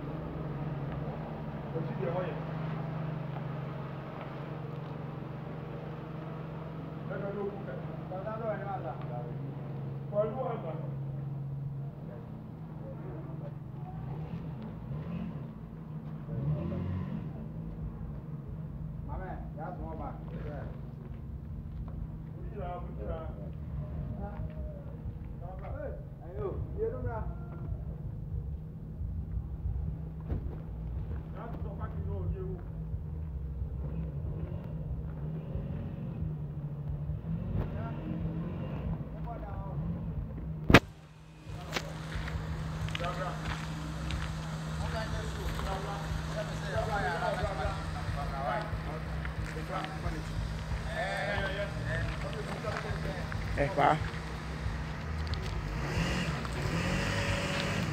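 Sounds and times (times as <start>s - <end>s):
voices talking: 0.0s - 17.5s, 40.8s - 57.9s
trike engine pulling away: 0.0s - 25.9s, 26.6s - 57.9s.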